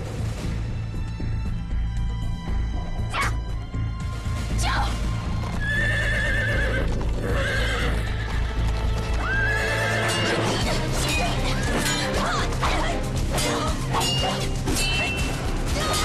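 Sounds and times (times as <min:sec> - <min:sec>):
low dramatic film score: 0:00.0 - 0:16.0
horse hooves galloping: 0:04.0 - 0:13.4
horse whinnying: 0:05.6 - 0:10.6.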